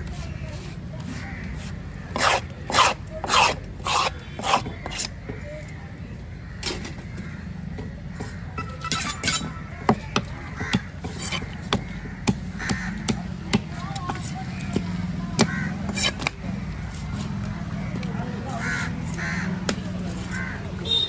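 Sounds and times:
knife chopping on wooden block: 0.1 - 5.1, 8.2 - 16.4
crows cawing: 1.1 - 2.3, 6.2 - 8.8, 9.5 - 13.6, 15.3 - 20.7.

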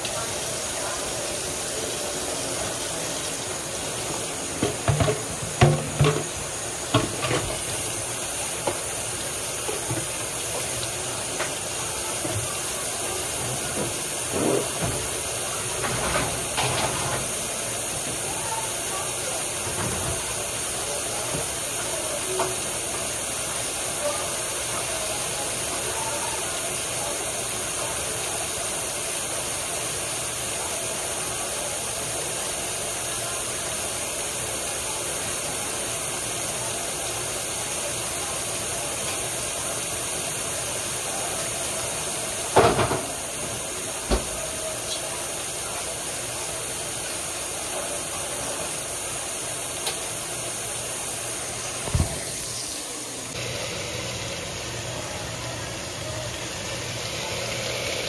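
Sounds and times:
food frying in a pan: 0.0 - 58.0
cookware knocking and clattering: 4.6 - 7.6.

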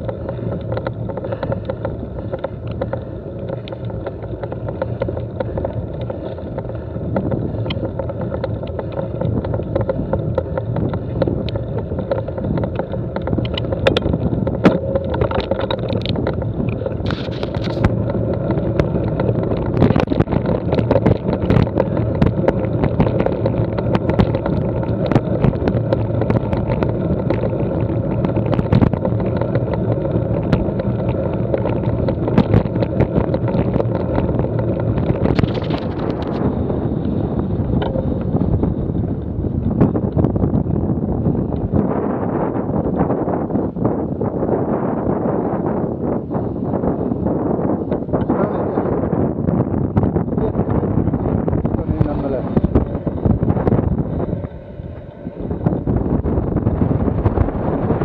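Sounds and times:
stones clicking and knocking: 0.0 - 36.4
bike tyres rumbling and rattling: 0.0 - 58.0.

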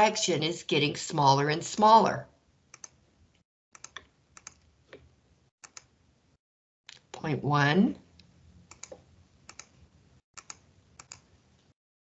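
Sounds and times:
computer keys typing: 2.8 - 3.0, 3.8 - 4.6, 5.6 - 5.9, 10.4 - 11.3.

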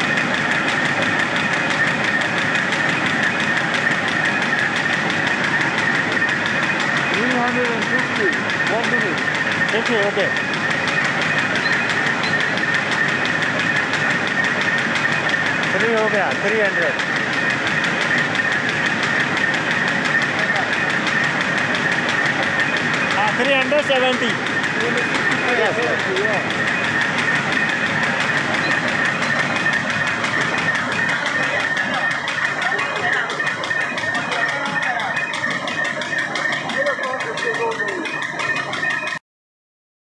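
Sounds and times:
fast even machine ticking: 0.0 - 39.2
high machine whine: 0.0 - 39.2
machine whirring: 0.0 - 39.2.

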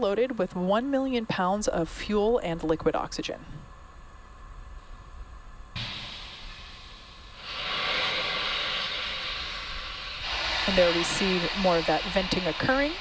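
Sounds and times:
rocket venting vapour hiss: 5.8 - 13.0.

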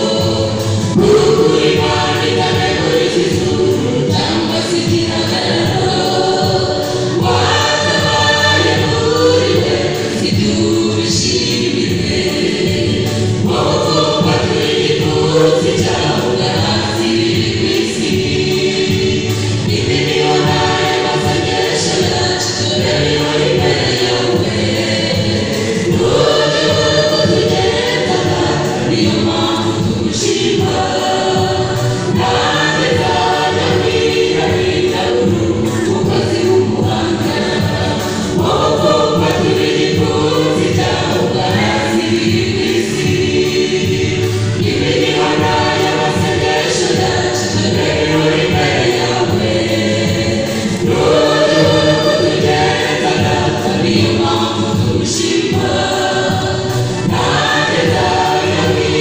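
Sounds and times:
choir singing gospel song: 0.0 - 59.0.

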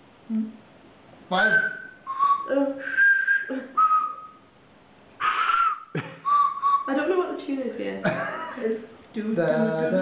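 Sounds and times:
tuned hand whistles playing tune: 1.5 - 4.4, 5.6 - 6.9.

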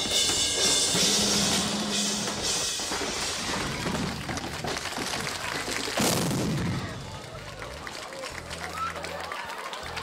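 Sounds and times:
rock band noisy din: 0.0 - 7.7
sudden loud blast: 6.0 - 7.1.

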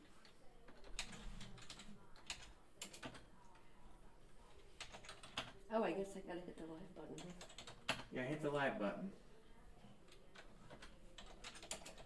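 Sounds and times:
computer keyboard typing: 0.0 - 3.4, 4.6 - 5.6, 7.1 - 8.1, 10.0 - 12.0.

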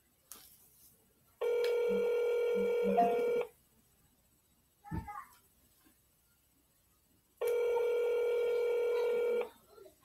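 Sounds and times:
telephone ringback tone: 1.4 - 3.5, 7.4 - 9.5.

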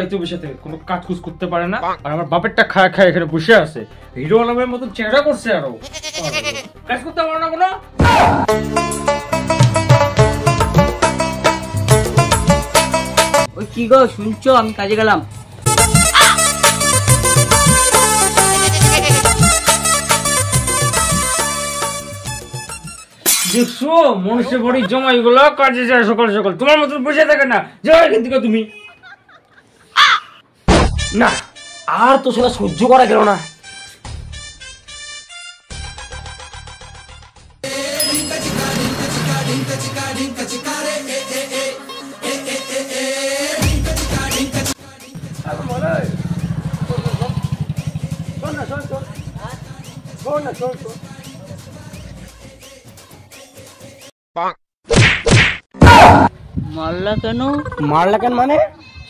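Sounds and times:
crow cawing: 16.1 - 16.5, 30.0 - 30.4
voice wailing: 16.1 - 16.5, 18.6 - 19.4
slaps to the face: 30.7 - 31.0, 54.9 - 56.0.

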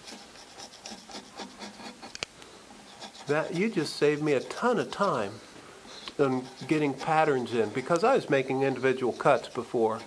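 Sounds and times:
carving gouge cutting dry wood: 0.0 - 2.2, 2.8 - 5.4, 6.0 - 10.0.

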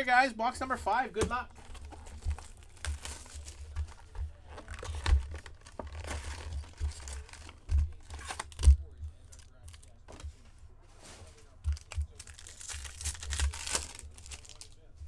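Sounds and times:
wrapped packs rustling and crinkling: 1.5 - 14.9.

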